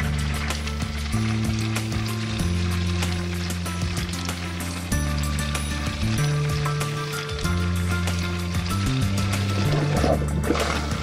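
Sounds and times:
music with held low notes: 0.0s - 11.0s.

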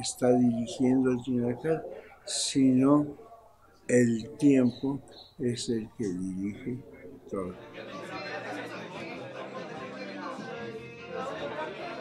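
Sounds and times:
chatter of people talking: 0.0s - 12.0s
faint music: 0.0s - 12.0s.

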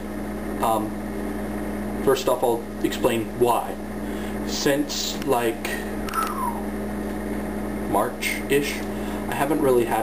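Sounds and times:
low room hum: 0.0s - 10.0s
man talking: 7.9s - 10.0s.

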